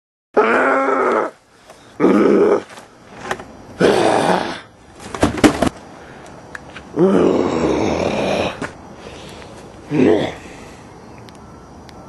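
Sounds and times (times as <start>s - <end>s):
person groaning: 7.0s - 8.6s, 9.9s - 10.6s.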